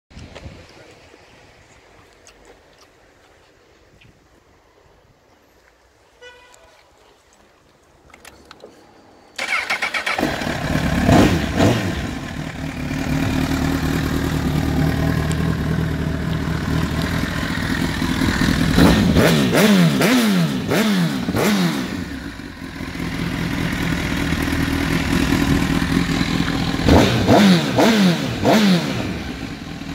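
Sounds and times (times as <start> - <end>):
motorcycle electric starter cranking: 9.4 - 10.7
motorcycle engine idling and revving: 9.4 - 29.9.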